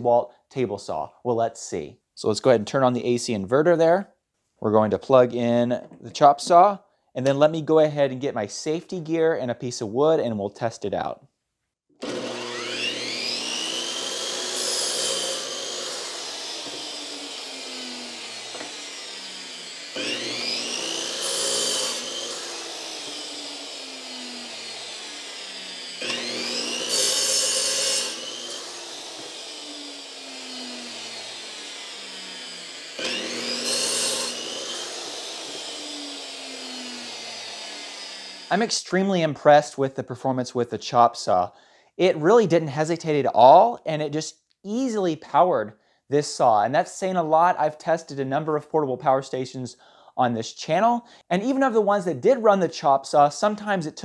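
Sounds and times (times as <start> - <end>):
electric saw motor whining: 12.0 - 38.6
saw blade cutting wood: 12.0 - 38.7.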